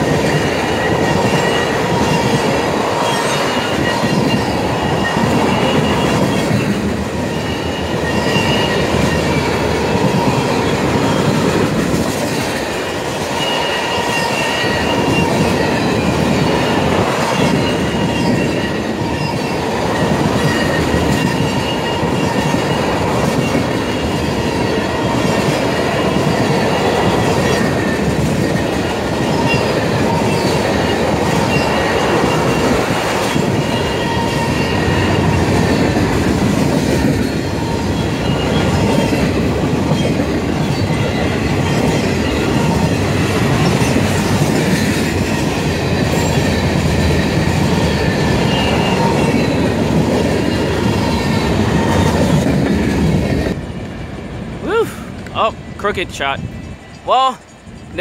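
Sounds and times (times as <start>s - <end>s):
high ringing wheel tones: 0.0s - 11.4s
freight train rumbling past: 0.0s - 58.0s.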